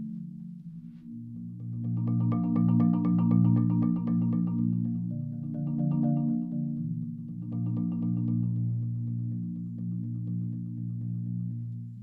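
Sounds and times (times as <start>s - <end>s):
marimba chord roll: 1.1s - 11.6s.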